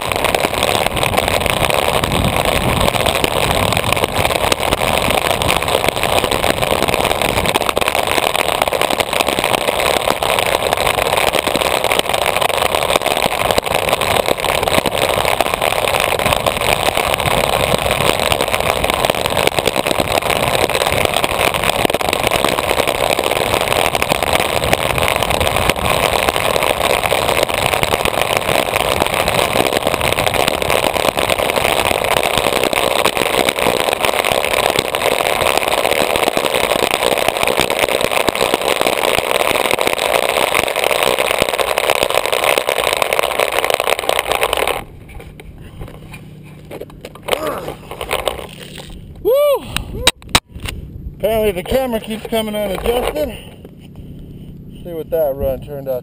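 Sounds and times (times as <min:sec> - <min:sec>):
wind rushing on microphone: 0:00.0 - 0:12.1, 0:12.8 - 0:38.4
wheels rolling on asphalt: 0:00.0 - 0:56.0.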